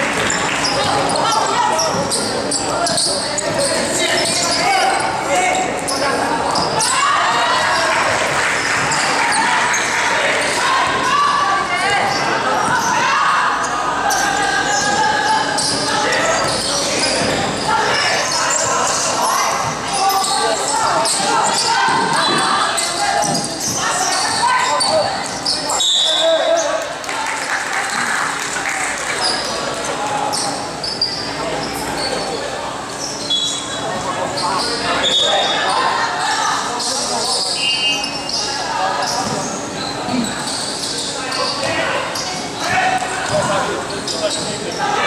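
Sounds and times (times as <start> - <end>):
hubbub of voices in hall: 0.0 - 45.0.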